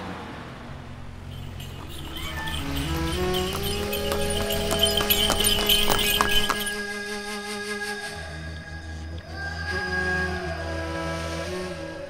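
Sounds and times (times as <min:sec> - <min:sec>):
low traffic rumble: 0:00.0 - 0:06.8
horse hooves clip-clopping on road: 0:01.2 - 0:06.8
background music: 0:01.2 - 0:12.0.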